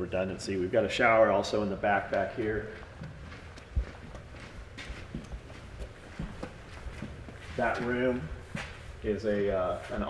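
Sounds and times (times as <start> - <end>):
footsteps on concrete: 1.8 - 10.0.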